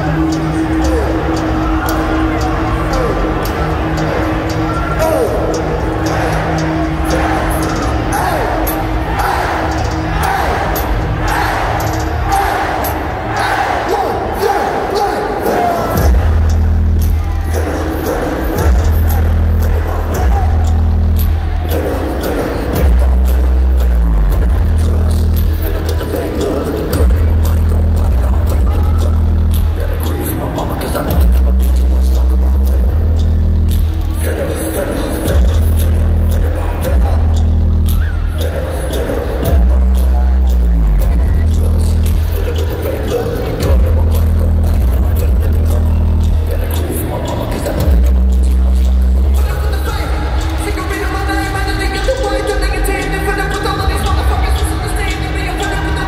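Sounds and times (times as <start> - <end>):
heavy sub-bass notes: 0.0 - 56.0
loud live concert music: 0.0 - 56.0
rapped or shouted vocals: 0.0 - 56.0.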